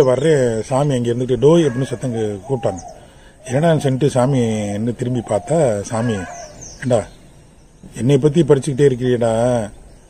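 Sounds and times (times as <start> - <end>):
small bird chirps: 1.6 - 8.2.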